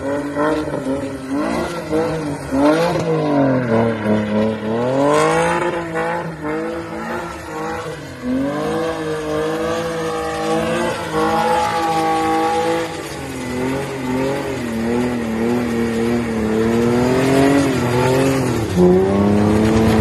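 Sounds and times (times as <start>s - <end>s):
car engine revving hard: 0.0s - 20.0s
tyres squealing on tarmac: 0.0s - 20.0s.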